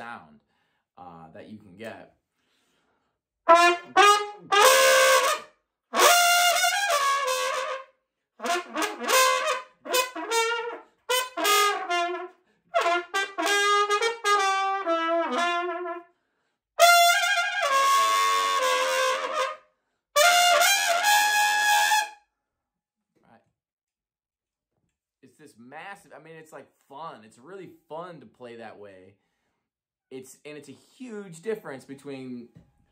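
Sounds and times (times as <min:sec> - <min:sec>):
trumpet with raspy growl: 0:03.5 - 0:05.4.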